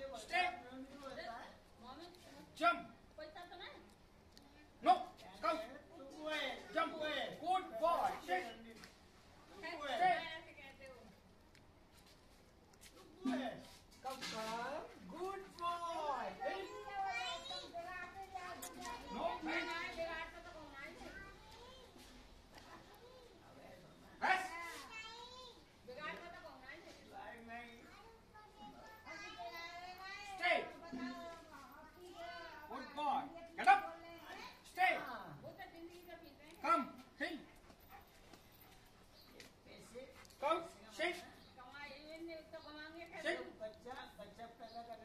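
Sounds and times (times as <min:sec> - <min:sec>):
children talking: 0:15.3 - 0:23.6, 0:24.2 - 0:26.6, 0:27.7 - 0:35.0.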